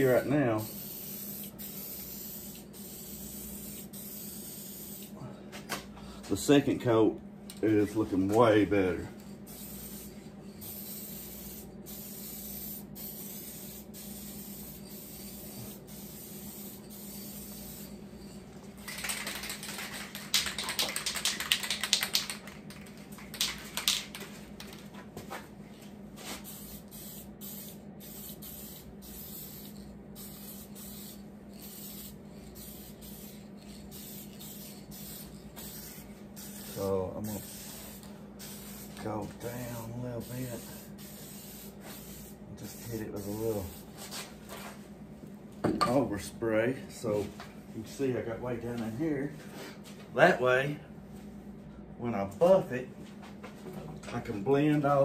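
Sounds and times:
steady low hum: 0:00.0 - 0:55.0
spray paint can hissing: 0:00.6 - 0:05.1, 0:09.5 - 0:22.5, 0:26.3 - 0:43.9.

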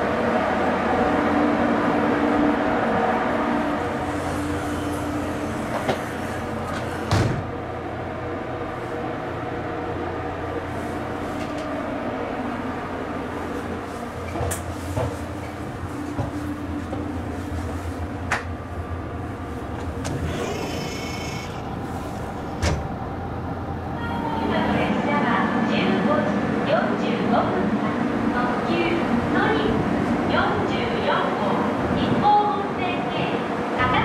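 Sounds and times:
electric train humming: 0:00.0 - 0:34.0.

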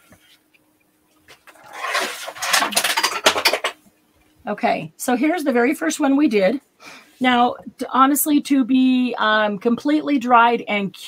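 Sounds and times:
paper rustling and scraping: 0:01.3 - 0:03.6.

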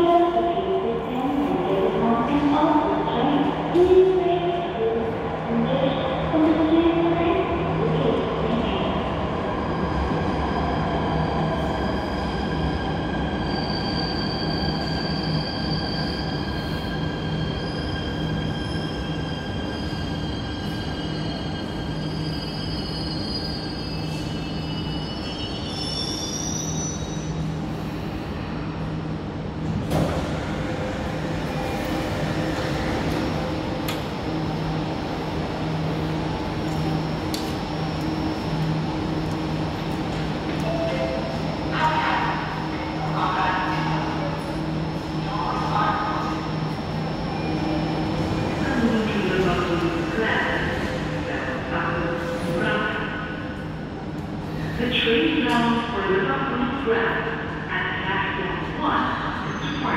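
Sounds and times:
metro train braking squeal: 0:09.5 - 0:28.8, 0:45.9 - 0:53.5, 0:54.3 - 0:55.3, 0:59.1 - 0:59.9.

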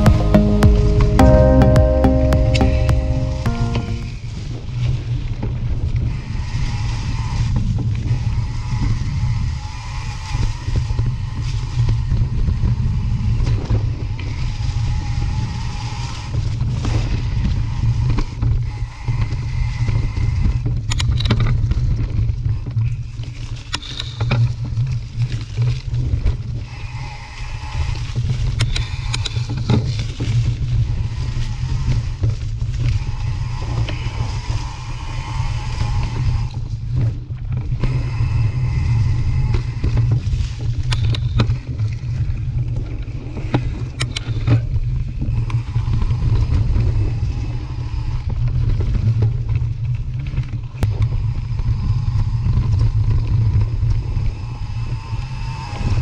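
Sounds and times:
wind rumble on microphone: 0:04.6 - 0:56.0.

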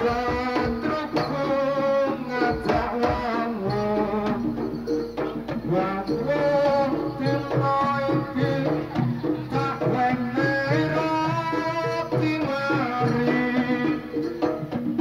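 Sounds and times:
barrel drum rhythm: 0:00.0 - 0:15.0.

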